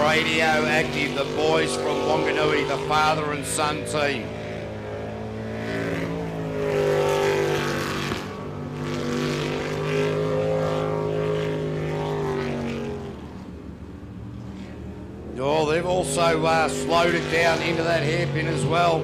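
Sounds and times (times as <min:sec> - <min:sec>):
boat engine running at high power: 0:00.0 - 0:19.0.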